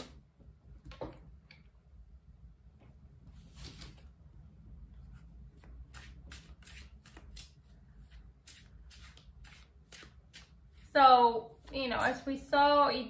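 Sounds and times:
cards being shuffled: 3.5 - 4.0, 5.6 - 10.6.

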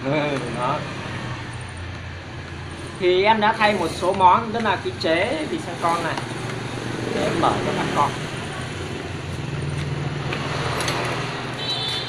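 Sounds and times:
low hum of road traffic: 0.0 - 12.0.

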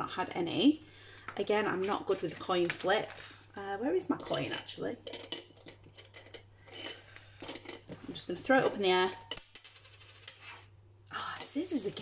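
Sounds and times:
coin rattling on table: 9.3 - 10.5.

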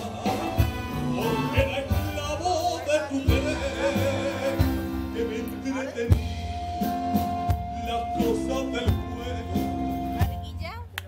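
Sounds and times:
man singing with vibrato: 0.0 - 10.2
piano: 0.0 - 10.6
low bass notes: 0.0 - 10.9.

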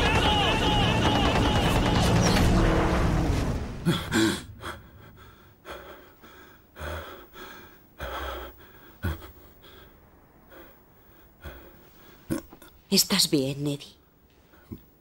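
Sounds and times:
loud din: 0.0 - 2.7.

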